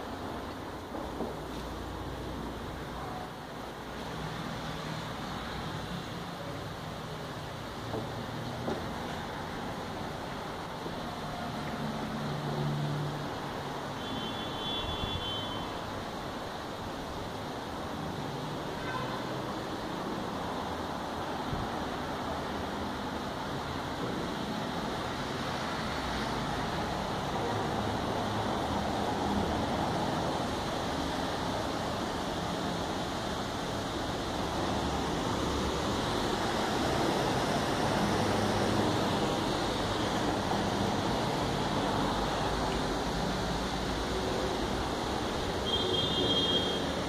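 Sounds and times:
steady rushing noise: 0:00.0 - 0:14.0, 0:14.9 - 0:47.0.

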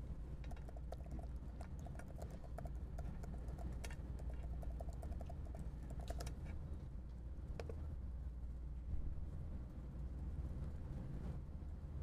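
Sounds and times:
low room hum: 0:00.0 - 0:12.0
keyboard typing: 0:00.5 - 0:06.3.

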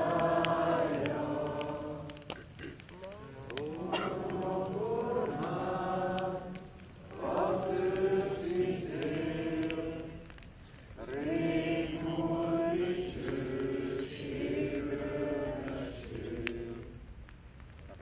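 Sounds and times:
group singing slow song: 0:00.0 - 0:02.8, 0:03.5 - 0:17.3.

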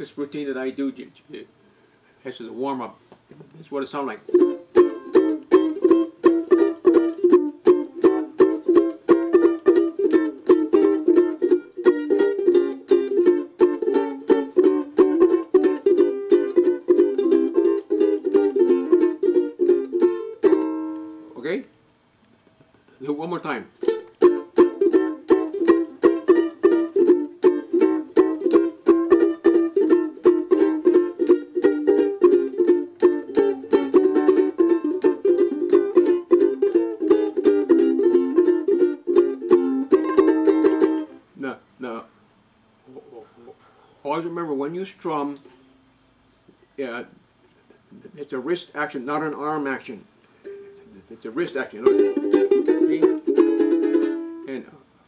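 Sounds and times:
ukulele strumming chords: 0:04.0 - 0:21.4, 0:23.4 - 0:41.2, 0:50.4 - 0:54.6.

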